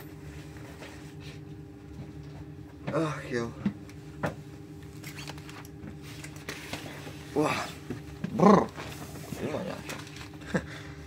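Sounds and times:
man groaning: 0:07.3 - 0:09.8.

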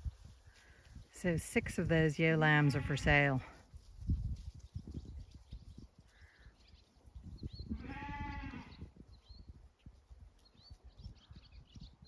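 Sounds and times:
lamb bleating: 0:07.7 - 0:08.7.

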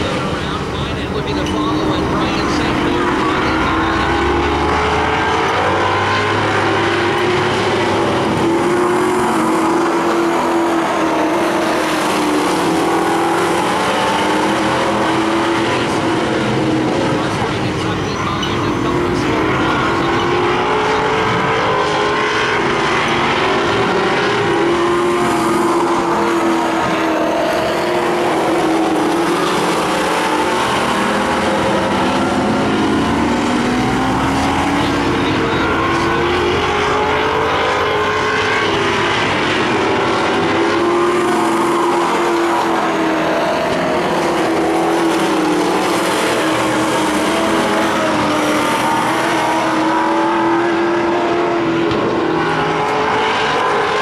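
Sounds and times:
race car engines running hard: 0:00.0 - 0:54.0.

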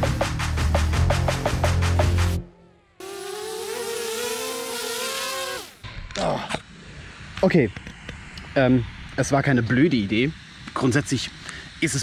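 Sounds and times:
drone propellers whining: 0:02.5 - 0:12.0
drone motors spinning down: 0:02.6 - 0:06.1.

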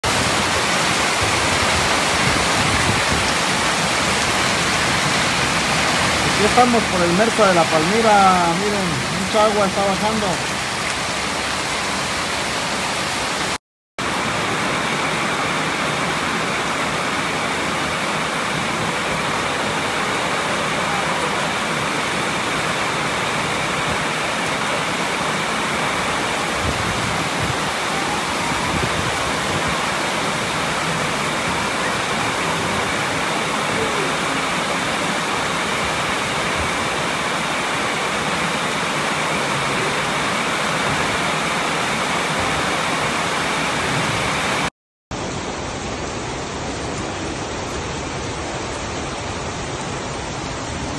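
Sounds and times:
floodwater rushing: 0:00.0 - 0:50.9
heavy rain: 0:00.0 - 0:50.9.

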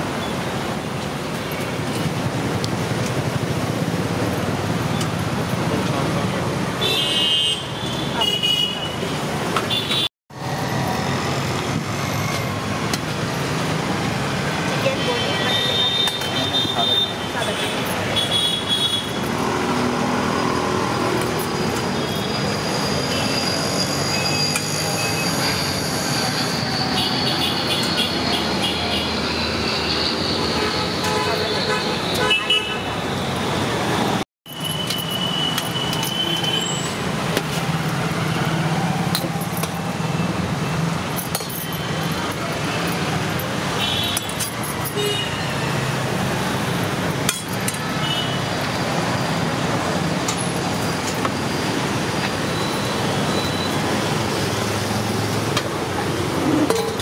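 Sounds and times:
roadside traffic noise: 0:00.0 - 0:57.0
people talking: 0:14.6 - 0:18.4, 0:31.1 - 0:32.1.

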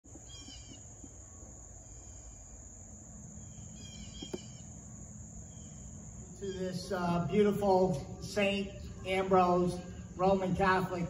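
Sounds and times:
bird chirping: 0:00.1 - 0:02.5, 0:03.3 - 0:11.0
high-pitched insect drone: 0:00.2 - 0:11.0.

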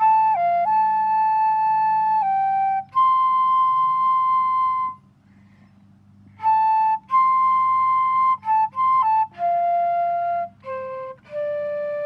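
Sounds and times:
solo flute: 0:00.0 - 0:05.1, 0:06.3 - 0:12.0.

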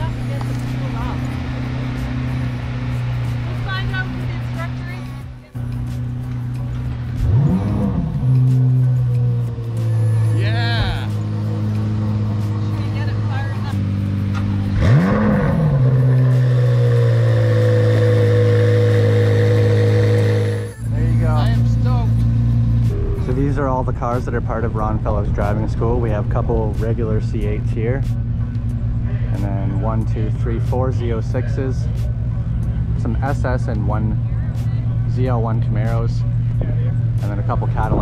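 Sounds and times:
engine rev blips: 0:00.0 - 0:25.6
car engines idling: 0:00.0 - 0:38.0.

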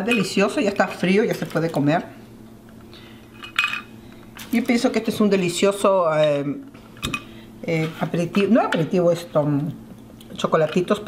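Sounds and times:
tableware clink: 0:03.4 - 0:03.9.

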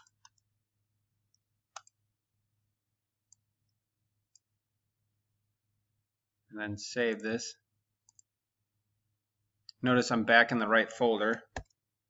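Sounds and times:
computer mouse clicks: 0:01.3 - 0:02.0, 0:08.1 - 0:08.3, 0:11.4 - 0:11.8.

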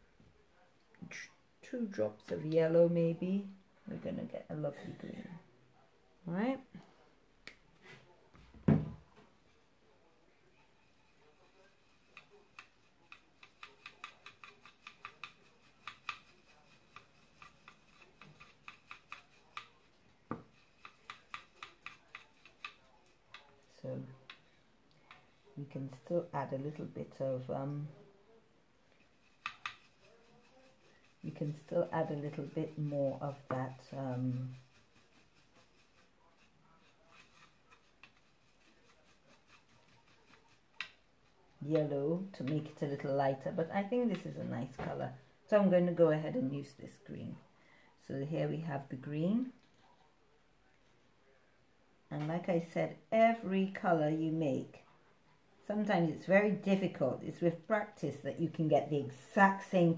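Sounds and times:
paintbrush ticking in palette: 0:10.5 - 0:23.6, 0:29.0 - 0:33.4.

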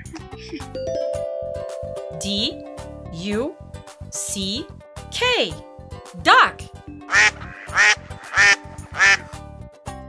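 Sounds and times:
light background music: 0:00.0 - 0:10.0
duck quacking: 0:07.1 - 0:09.3.

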